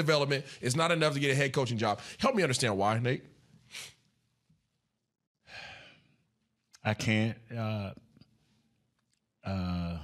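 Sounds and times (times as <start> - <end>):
man speaking: 0.0 - 3.4, 6.8 - 8.1.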